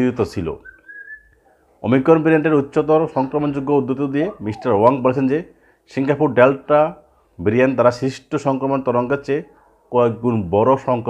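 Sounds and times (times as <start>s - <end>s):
man speaking: 0.0s - 0.7s, 1.8s - 11.0s
short high whistling tone: 0.6s - 1.4s.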